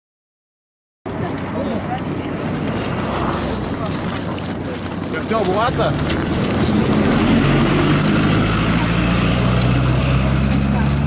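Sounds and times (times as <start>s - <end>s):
people talking: 1.1s - 6.3s, 10.0s - 11.0s
low rumble: 1.9s - 11.0s.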